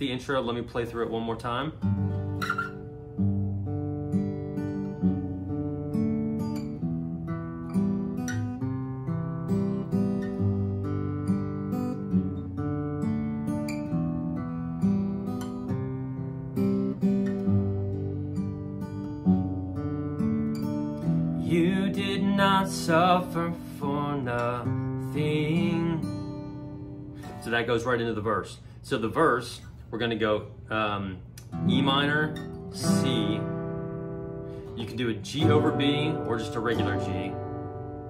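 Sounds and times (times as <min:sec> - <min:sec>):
fingerpicked acoustic guitar: 0:00.0 - 0:38.0.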